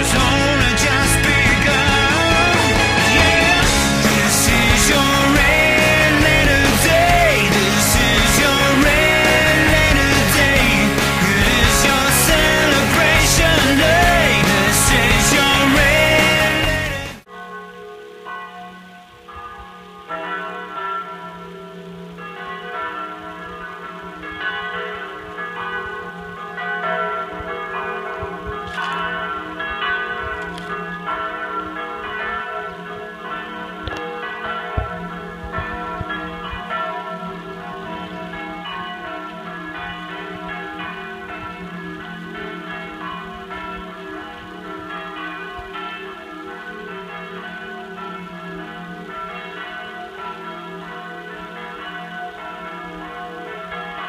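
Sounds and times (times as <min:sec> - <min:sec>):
church bells ringing: 0:00.0 - 0:54.0.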